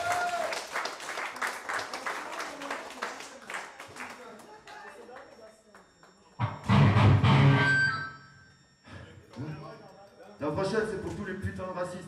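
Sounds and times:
band hit on drums and instruments: 6.4 - 7.7.

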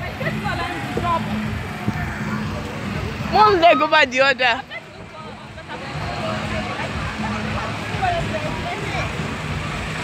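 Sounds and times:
faint talking and laughter: 0.0 - 10.0.

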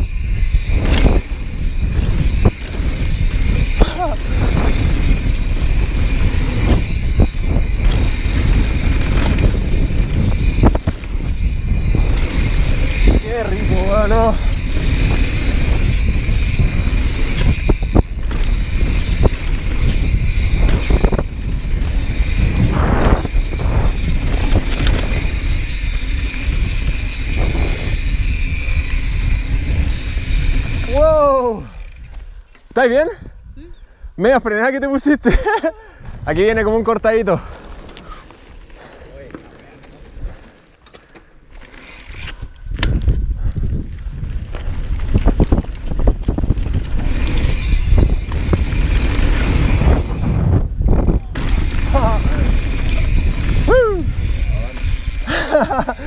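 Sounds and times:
wind buffeting microphone: 0.0 - 32.5, 35.7 - 39.0, 41.8 - 56.0
tyres on loose dirt: 0.0 - 33.0, 37.2 - 56.0.

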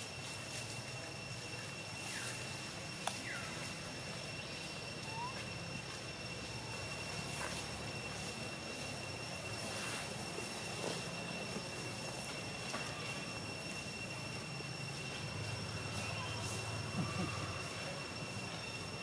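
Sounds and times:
high-pitched whine: 0.0 - 19.0
low hum and hiss: 0.0 - 19.0.

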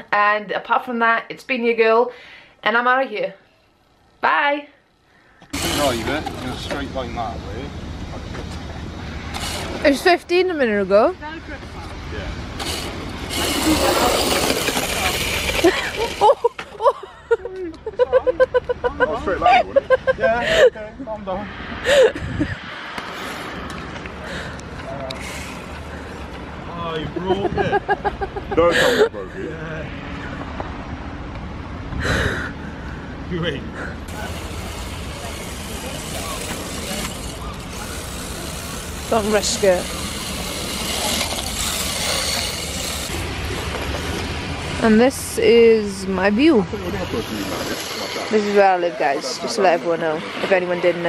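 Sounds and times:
model car motor whirring: 5.5 - 7.4, 9.2 - 10.4, 12.5 - 16.8, 24.4 - 26.4, 34.1 - 44.2
wind rumbling on microphone: 21.4 - 24.8
faint voices: 33.7 - 51.0
tyre hiss on wet paving: 34.1 - 43.2.

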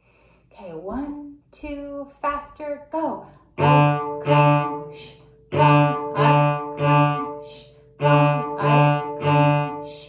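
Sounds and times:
cello bowing short strokes: 3.6 - 10.0.

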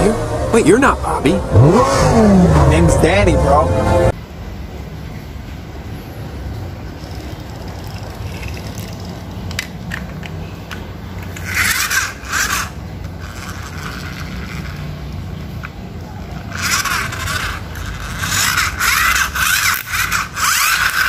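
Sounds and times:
steady low hum: 0.0 - 9.4
toy cars scraping on tiles: 7.0 - 21.0.

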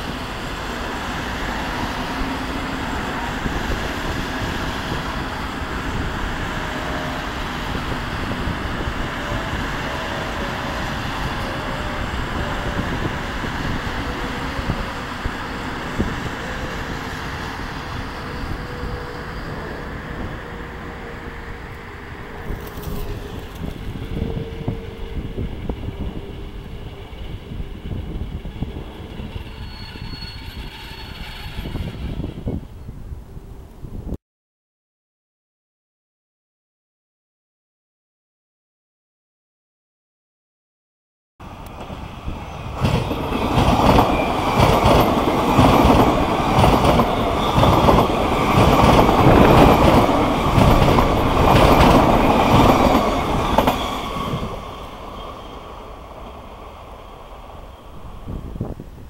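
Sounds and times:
train rolling rumble: 0.0 - 32.8, 41.4 - 59.0
high-pitched metallic squealing: 16.4 - 32.7.

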